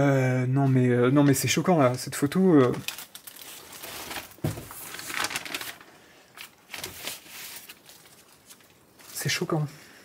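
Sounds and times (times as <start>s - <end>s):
paper rustling and crinkling: 0.7s - 9.6s.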